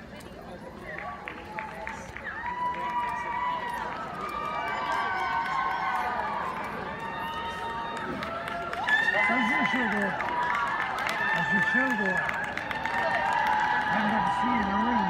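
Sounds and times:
spectators shouting: 2.4s - 15.0s.

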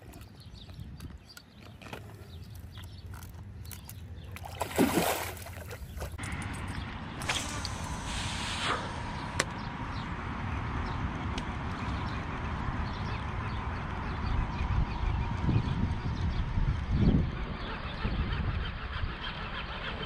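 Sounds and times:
water sloshing: 3.1s - 7.8s
fish splashing in water: 4.3s - 6.2s.

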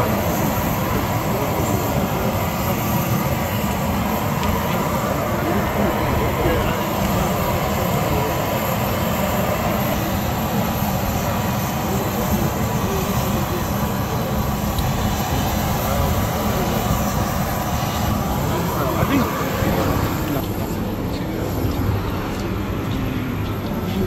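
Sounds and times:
high engine whine: 0.0s - 24.0s
turboprop engine drone: 0.0s - 24.0s.

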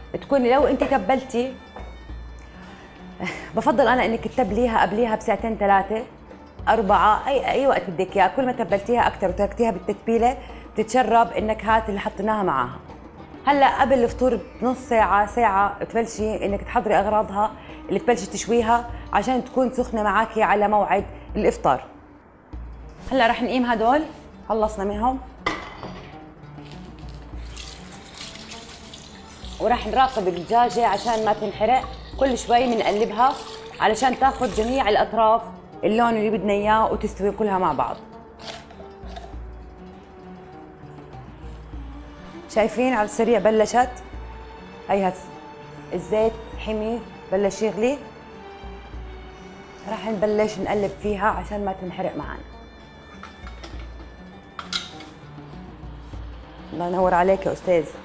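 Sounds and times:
soft background music: 0.0s - 58.0s
metal tongs clacking: 54.6s - 55.2s.

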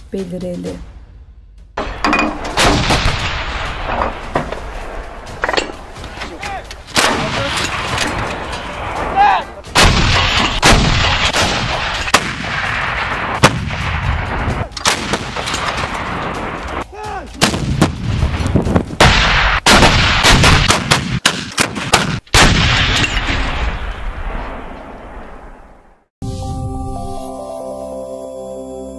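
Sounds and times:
artillery gun firing: 1.8s - 6.2s, 6.9s - 9.1s, 9.7s - 16.8s, 19.0s - 25.6s.

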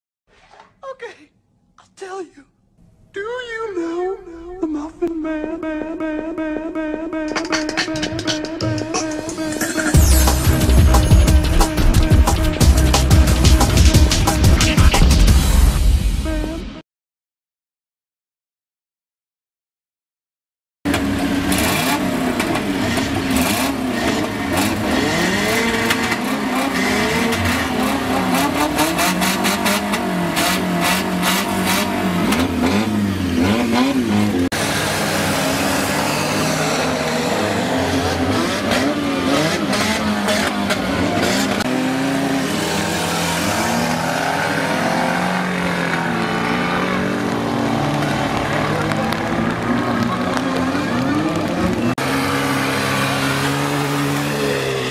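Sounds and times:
race car engines revving: 5.0s - 15.8s, 20.9s - 54.9s.

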